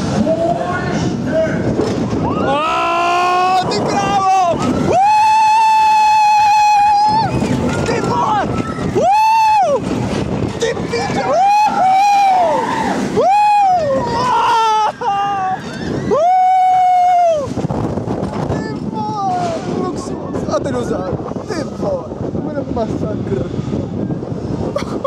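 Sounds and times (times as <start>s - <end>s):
roller coaster rushing on track: 0.0s - 25.0s
riders screaming: 2.2s - 9.8s, 10.6s - 17.5s.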